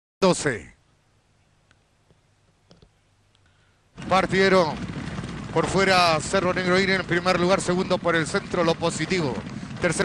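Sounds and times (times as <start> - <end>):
low faint hum: 0.7 - 10.0.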